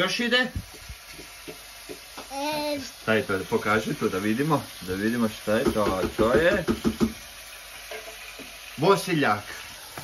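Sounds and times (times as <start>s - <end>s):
meat and onions sizzling: 0.0s - 10.0s.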